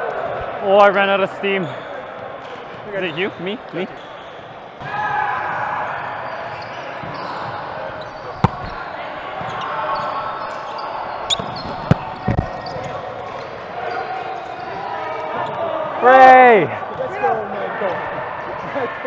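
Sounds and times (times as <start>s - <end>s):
murmur of voices: 0.0s - 19.0s
hands smacking volleyball: 8.4s - 8.8s.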